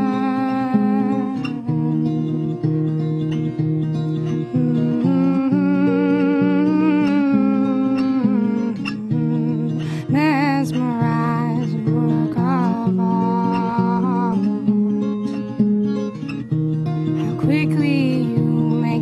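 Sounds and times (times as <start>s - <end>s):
woman singing long notes: 0.0s - 2.8s, 4.2s - 14.8s, 17.2s - 19.0s
acoustic guitar picking: 0.0s - 19.0s.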